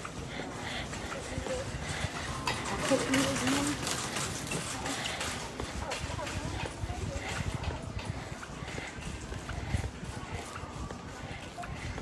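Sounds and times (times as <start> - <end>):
faint voices: 0.0 - 12.0
shopping cart wheels rattling: 0.0 - 12.0.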